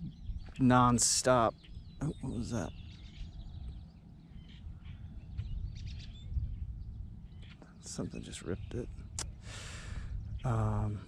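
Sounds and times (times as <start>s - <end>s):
faint bird calls: 0.0s - 11.0s
wind rumbling on microphone: 0.0s - 11.0s.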